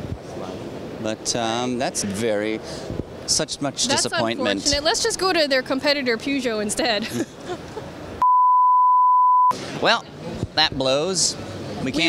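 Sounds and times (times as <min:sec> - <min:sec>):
laughter: 0:07.0 - 0:07.9
censor beep: 0:08.2 - 0:09.5.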